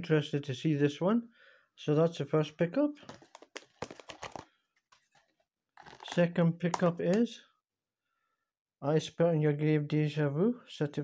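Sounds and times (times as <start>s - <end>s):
plastic case clicks and taps: 3.1s - 4.4s, 6.7s - 7.2s.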